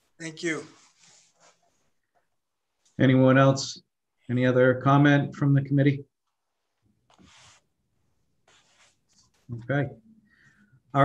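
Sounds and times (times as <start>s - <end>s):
man speaking: 0.1s - 1.0s, 9.5s - 10.0s.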